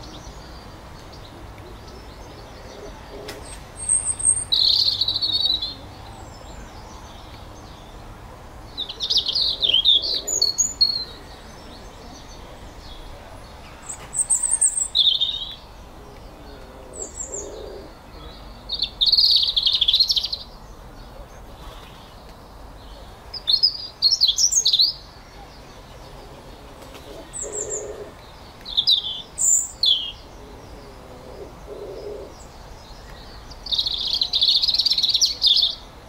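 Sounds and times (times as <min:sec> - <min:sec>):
faint background hiss: 0:00.0 - 0:36.0
songbird chirps and trills: 0:00.0 - 0:36.0.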